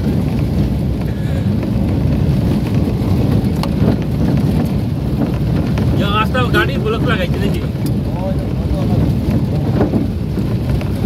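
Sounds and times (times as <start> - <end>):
tyre and road noise: 0.0 - 11.0
wind buffeting microphone: 0.0 - 11.0.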